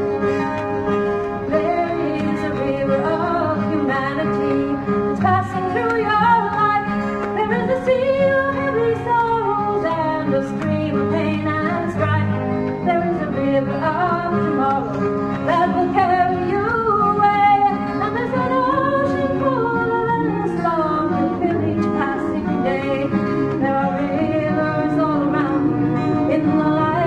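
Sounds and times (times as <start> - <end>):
guitar accompaniment: 0.0 - 27.0
woman singing: 1.4 - 27.0.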